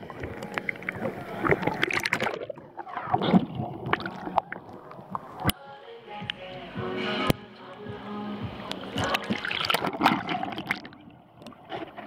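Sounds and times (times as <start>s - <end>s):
water clicks and gurgles: 0.0s - 5.6s, 8.6s - 12.0s
water sloshing and splashing: 0.0s - 5.6s, 8.6s - 12.0s
background voices: 0.0s - 12.0s.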